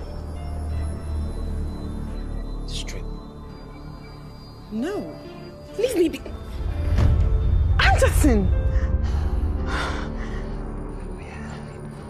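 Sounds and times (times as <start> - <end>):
low film score drone: 0.0 - 12.0.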